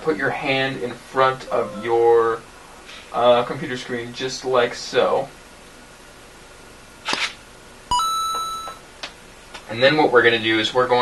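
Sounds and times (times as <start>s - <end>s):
ringing electronic beep: 7.9s - 8.8s.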